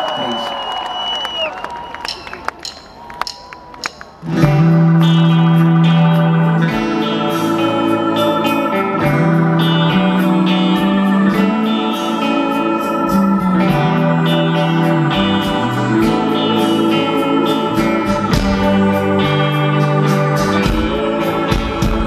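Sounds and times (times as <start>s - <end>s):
crowd noise: 0.0s - 22.0s
acoustic guitar strumming: 4.2s - 22.0s
sustained keyboard chords: 4.2s - 22.0s.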